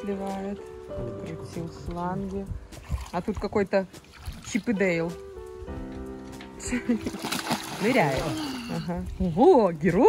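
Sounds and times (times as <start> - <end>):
background music with held chord: 0.0 - 3.0, 3.6 - 10.0
water splashing in a pool: 1.6 - 5.1, 6.8 - 9.0.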